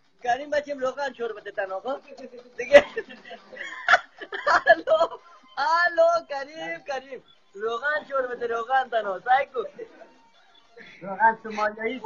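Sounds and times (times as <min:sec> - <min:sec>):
person talking and laughing: 0:01.3 - 0:10.2.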